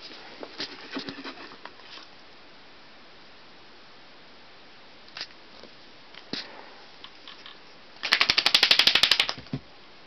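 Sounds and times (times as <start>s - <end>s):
fast run of sharp clicks: 8.0s - 9.5s.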